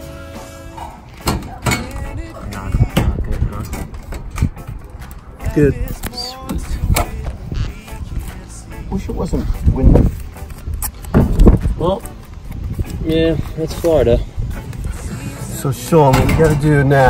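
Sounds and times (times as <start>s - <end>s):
wind gusting on microphone: 2.1s - 8.4s, 9.0s - 16.6s.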